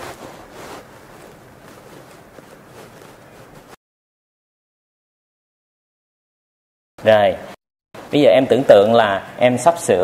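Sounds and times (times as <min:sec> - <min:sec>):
faint rustles: 0:00.0 - 0:03.8.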